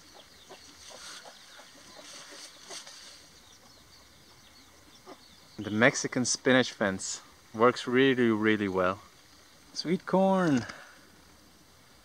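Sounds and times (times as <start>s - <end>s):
chicken clucking: 0.0s - 3.8s
high outdoor chirping: 0.0s - 12.0s.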